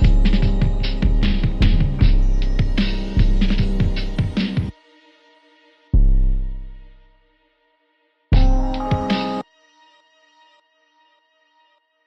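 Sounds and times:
hip hop beat: 0.0s - 4.7s, 8.4s - 9.4s
faint held tones: 8.4s - 9.4s.

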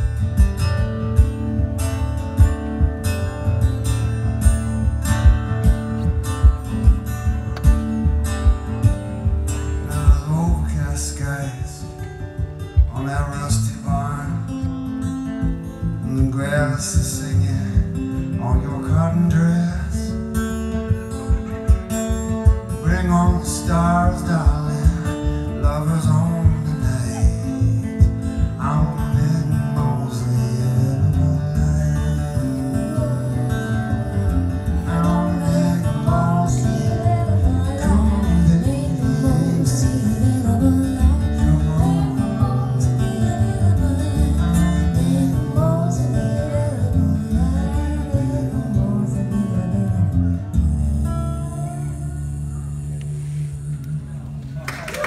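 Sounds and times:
acoustic guitar picking: 0.0s - 54.6s.

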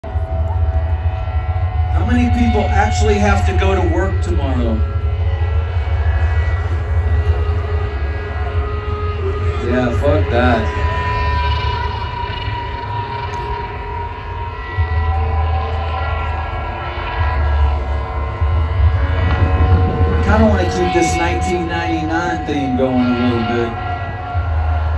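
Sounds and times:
deep bass drone: 0.0s - 24.9s
held higher note: 0.0s - 24.9s.

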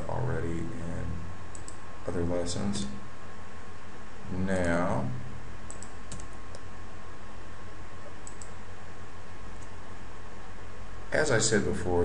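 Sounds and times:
low electrical hum: 0.0s - 12.0s
keyboard clicks: 1.5s - 1.8s, 5.7s - 6.6s, 8.1s - 8.6s.

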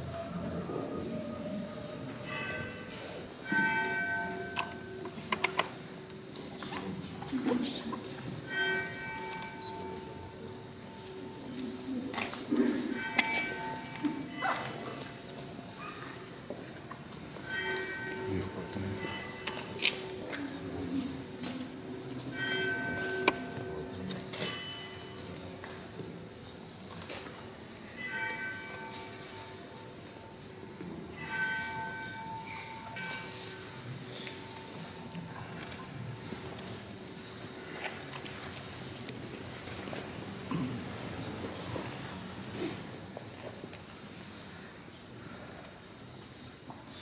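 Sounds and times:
church bell tolling: 2.0s - 6.0s, 8.3s - 15.2s, 17.3s - 25.5s, 27.8s - 35.5s.

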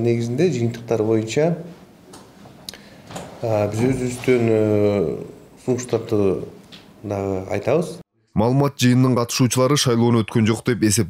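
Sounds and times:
man speaking into microphone: 0.0s - 1.8s, 3.3s - 11.0s.

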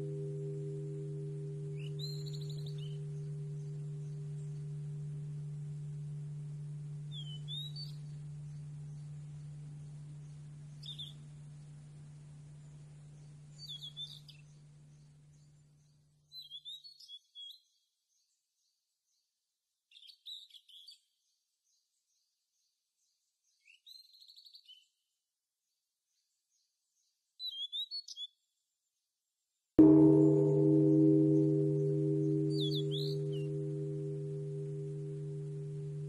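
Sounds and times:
bird chirps: 0.0s - 11.7s, 12.6s - 15.5s, 29.8s - 36.0s
low ringing tone: 0.0s - 14.0s, 29.8s - 36.0s.

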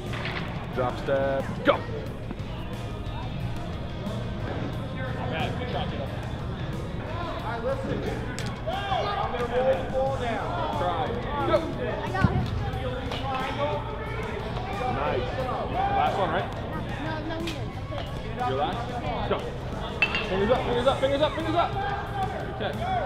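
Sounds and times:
background music: 0.0s - 23.0s
children's voices and chatter: 7.0s - 22.5s.

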